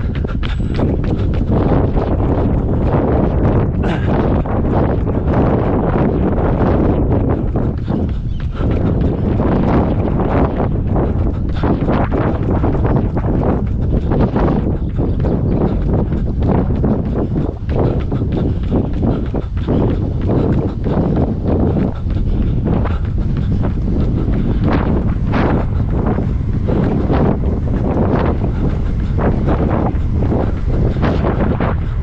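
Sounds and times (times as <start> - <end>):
running footsteps on a path: 0.0 - 32.0
wind buffeting microphone: 0.0 - 32.0.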